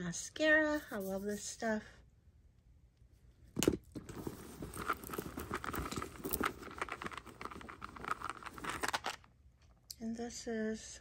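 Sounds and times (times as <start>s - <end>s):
handbag contents rustling: 3.9s - 9.2s.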